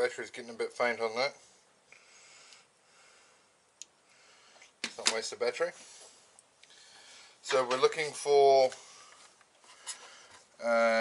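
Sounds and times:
faint breath noise: 1.3s - 4.8s, 5.7s - 7.4s, 8.7s - 10.6s.

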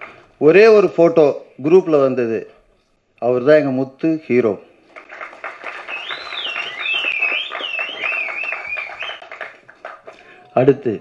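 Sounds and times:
audience clapping: 4.8s - 10.5s
loud wavering whistle: 5.8s - 9.2s.

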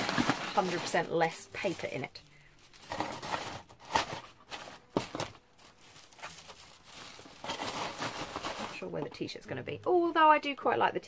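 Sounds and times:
packaging crinkling: 0.0s - 8.9s.

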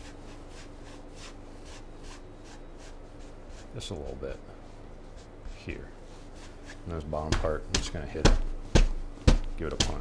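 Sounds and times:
paintbrush swishing on canvas: 0.0s - 7.6s.

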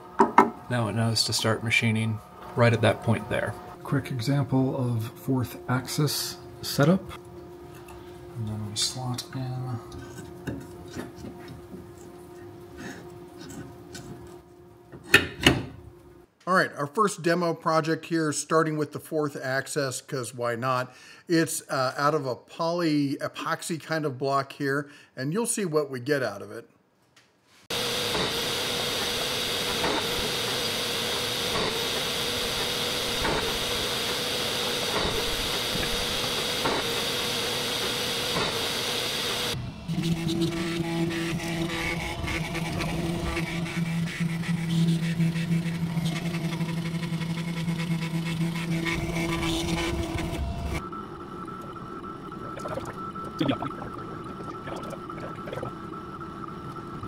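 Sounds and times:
machine hiss and whine: 0.0s - 10.3s, 27.7s - 57.0s
steady low hum: 0.0s - 16.3s, 39.5s - 57.0s.

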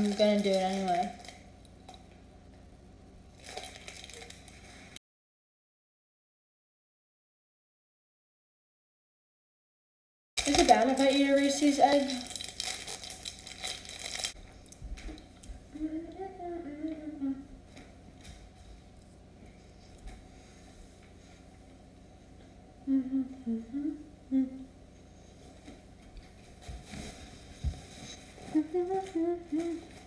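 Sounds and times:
candy wrapper crinkling: 0.0s - 2.0s, 3.3s - 4.6s, 10.4s - 14.4s
girl humming softly: 15.7s - 17.6s, 22.8s - 24.8s, 28.4s - 30.0s.

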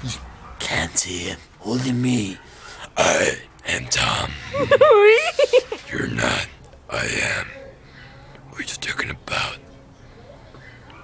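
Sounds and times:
man whispering: 0.6s - 4.5s, 5.9s - 7.6s, 8.5s - 9.7s.

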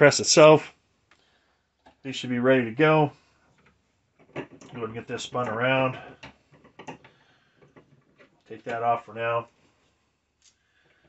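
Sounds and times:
press turret clicks and knocks: 4.2s - 4.8s.

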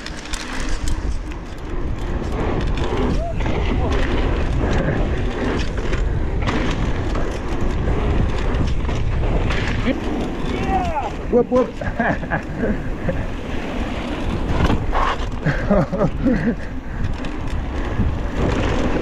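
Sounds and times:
bike rattling: 0.0s - 19.0s
wind buffeting microphone: 0.0s - 19.0s.

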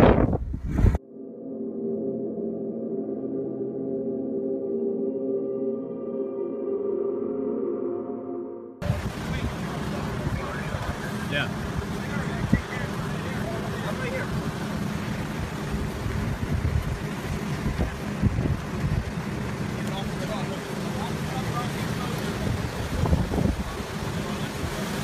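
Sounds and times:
wind: 0.0s - 1.1s, 8.8s - 25.0s
faint voices: 8.8s - 15.2s
low rumble of engines: 8.8s - 25.0s.

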